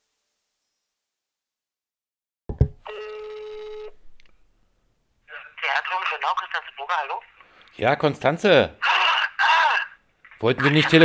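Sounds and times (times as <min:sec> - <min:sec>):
telephone ringback tone: 0:02.9 - 0:04.0
voice over telephone line: 0:05.3 - 0:07.3, 0:08.8 - 0:11.0.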